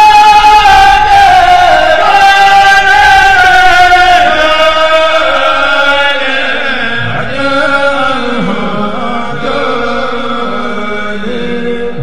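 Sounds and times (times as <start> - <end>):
man chanting devotional poetry: 0.0 - 12.0.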